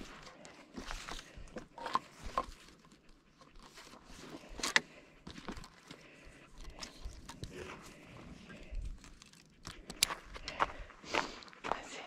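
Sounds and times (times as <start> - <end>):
footsteps crunching on icy snow: 9.1 - 12.0.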